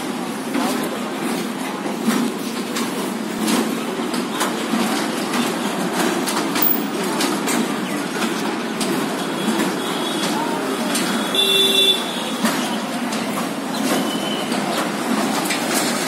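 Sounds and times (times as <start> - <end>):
carousel mechanical rumble: 0.0 - 16.0.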